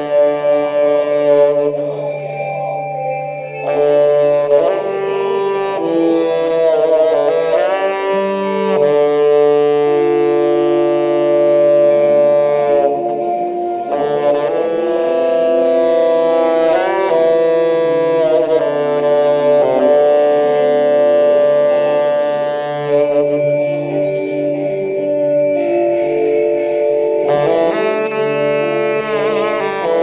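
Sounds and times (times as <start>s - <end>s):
saxophone long held notes: 0.0s - 30.0s
space rock music: 0.0s - 30.0s
steady low drone: 0.0s - 30.0s.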